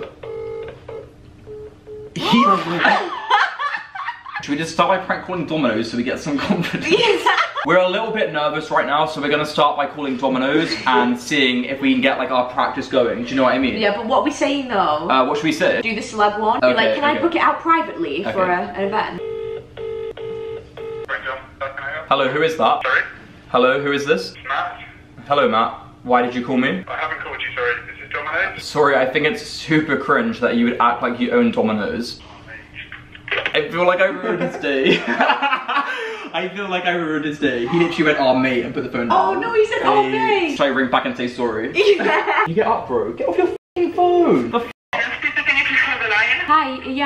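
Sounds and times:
phone call tones: 0.0 - 2.2, 19.2 - 21.2
group laughter: 2.2 - 4.6, 6.3 - 7.7, 34.1 - 36.4, 41.8 - 42.5
voices: 15.8 - 19.2, 23.8 - 25.0, 26.3 - 29.6, 41.8 - 47.0.

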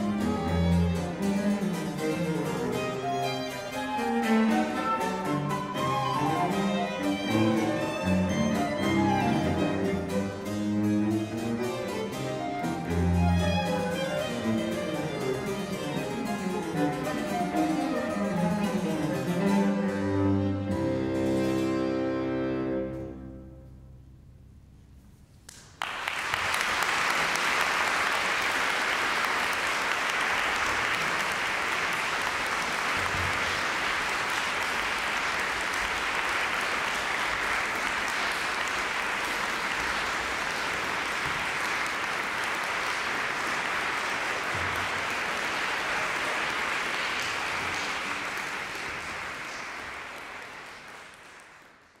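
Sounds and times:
audience applause: 2.3 - 10.2, 25.5 - 52.0.

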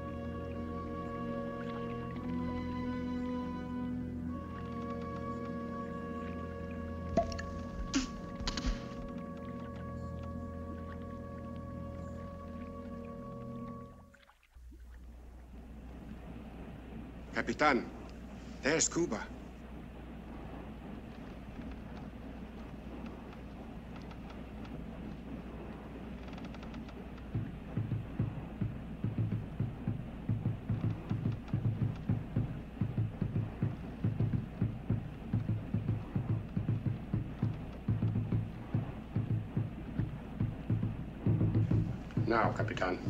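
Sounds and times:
low drums beating: 0.0 - 13.4, 26.7 - 43.0
steady low hum: 0.0 - 43.0.

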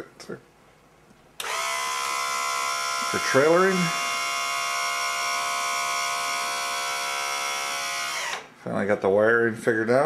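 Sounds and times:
electric pump whining: 1.4 - 8.6.

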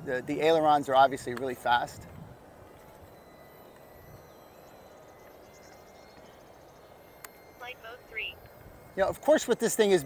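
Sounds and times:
faint steady high tone: 0.0 - 10.0
wind noise on microphone: 1.8 - 3.3.

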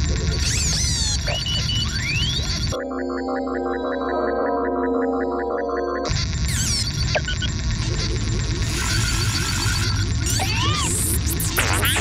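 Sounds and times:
electronic beeps and chirps: 0.1 - 12.0
synth music: 2.7 - 6.2.

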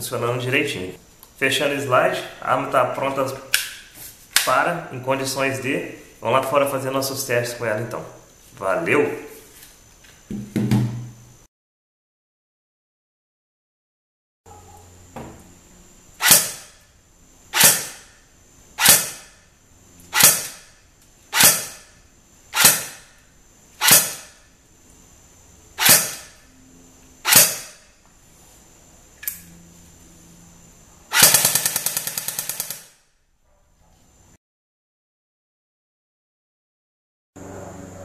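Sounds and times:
airsoft gun full-auto burst: 16.2 - 16.8, 17.6 - 18.0, 18.8 - 19.3, 21.4 - 21.8, 22.6 - 23.0, 25.8 - 26.3, 27.2 - 27.8, 31.1 - 33.0
airsoft gun single shots: 16.2 - 16.8, 17.6 - 18.1, 18.8 - 19.4, 20.1 - 20.7, 21.3 - 22.0, 22.6 - 23.1, 23.8 - 24.5, 25.8 - 26.4, 27.3 - 27.8, 31.1 - 33.0.

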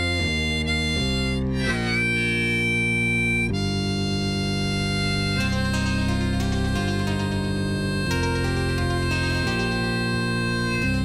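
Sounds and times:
harmonica playing: 0.0 - 11.0
synthesizer: 0.0 - 11.0
acoustic guitar: 5.0 - 11.0.

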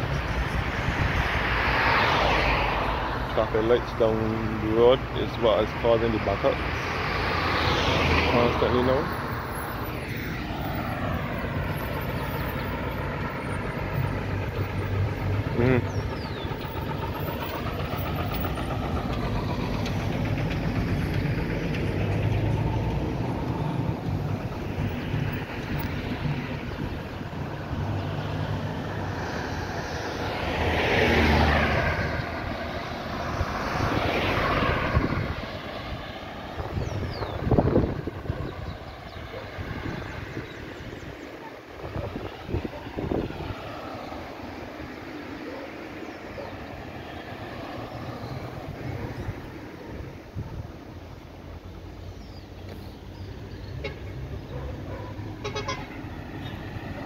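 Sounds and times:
cars passing: 0.0 - 57.0
road traffic rumble: 0.0 - 57.0.

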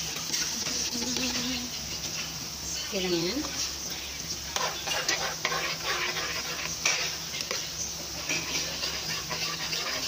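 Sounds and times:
ladle scraping metal pot: 4.6 - 10.0.

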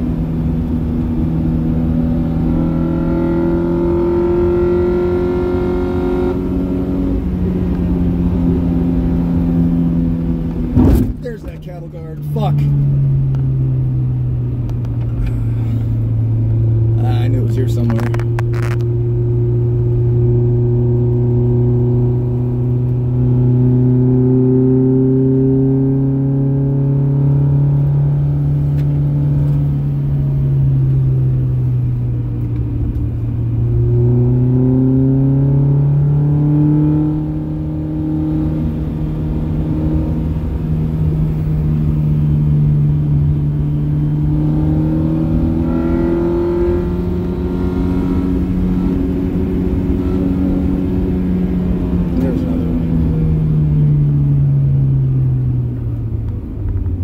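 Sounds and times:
car engine from inside cabin: 0.0 - 57.0.

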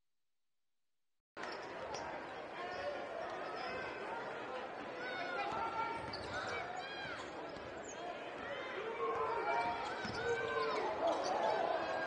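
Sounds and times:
crowd murmur: 1.7 - 12.0
sneakers squeaking: 5.6 - 8.2, 11.0 - 11.7.

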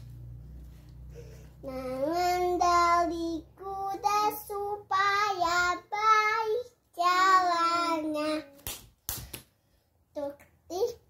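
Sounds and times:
girl singing unaccompanied: 1.6 - 8.8.

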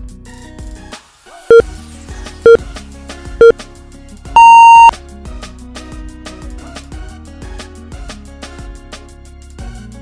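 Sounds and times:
long high-pitched timer beep: 4.4 - 4.9.

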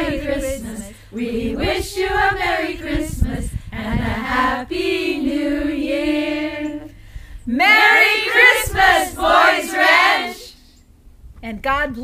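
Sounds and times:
women's choir singing a cappella: 0.0 - 10.6.

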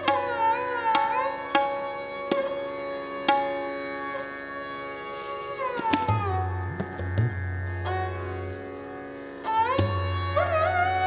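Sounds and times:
tabla strokes: 0.0 - 4.3, 5.5 - 8.6, 9.5 - 11.0
sarangi and harmonium melody: 0.0 - 11.0.

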